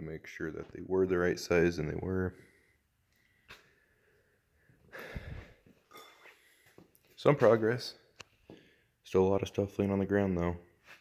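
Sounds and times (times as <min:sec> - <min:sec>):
short breath: 0:02.4 - 0:06.8.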